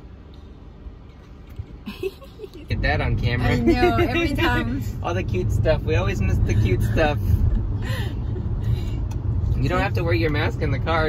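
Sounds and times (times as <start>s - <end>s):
person speaking: 3.4s - 4.9s.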